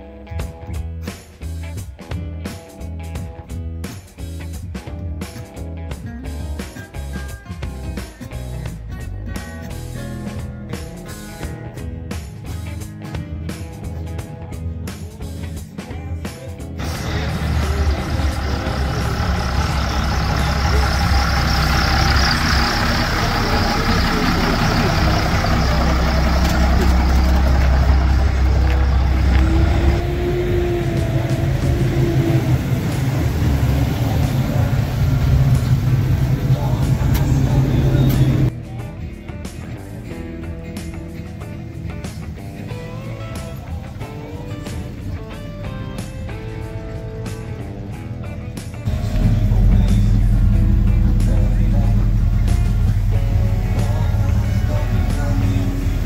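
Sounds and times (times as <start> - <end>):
background music with guitar: 0.0 - 56.0
car engines rumbling: 16.8 - 38.5, 40.2 - 56.0.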